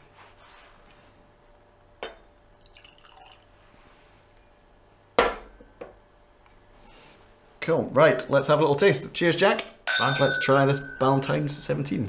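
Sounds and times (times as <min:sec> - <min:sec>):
whisky pouring and gurgling: 0:02.5 - 0:03.5.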